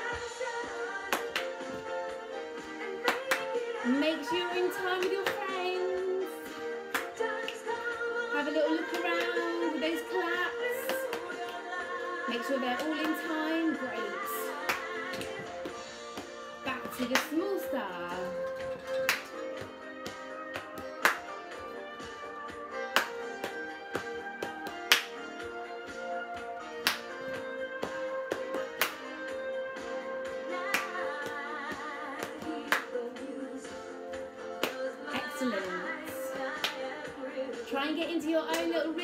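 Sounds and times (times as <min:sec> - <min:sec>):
children's song music: 0:00.0 - 0:39.0
hand claps: 0:01.1 - 0:02.0, 0:03.0 - 0:03.8, 0:04.8 - 0:05.7, 0:06.9 - 0:07.9, 0:08.7 - 0:09.6, 0:10.7 - 0:11.8, 0:12.7 - 0:13.4, 0:14.2 - 0:17.5, 0:18.2 - 0:26.0, 0:26.6 - 0:29.9, 0:30.6 - 0:33.2, 0:34.4 - 0:37.1, 0:38.5 - 0:38.8
body-percussion taps: 0:22.9 - 0:25.2.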